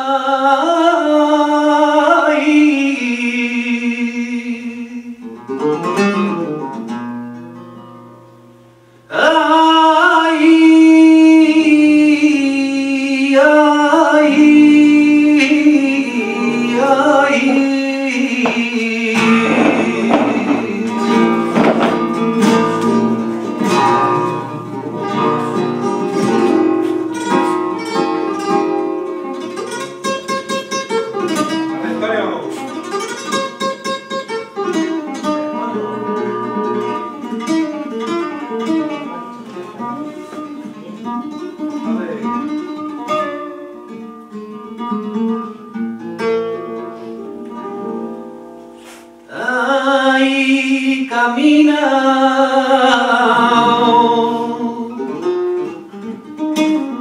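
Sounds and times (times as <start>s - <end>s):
man singing flamenco: 0.0s - 6.0s, 9.1s - 26.8s, 49.3s - 57.0s
flamenco guitar playing: 0.0s - 57.0s.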